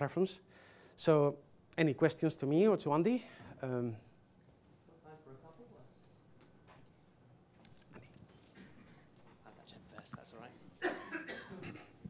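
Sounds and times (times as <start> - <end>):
person coughing: 10.8 - 12.0.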